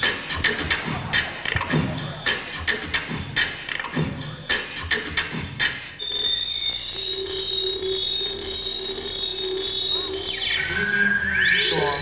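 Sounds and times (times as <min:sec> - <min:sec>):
synthesizer pitch sweeps: 0:06.0 - 0:12.0.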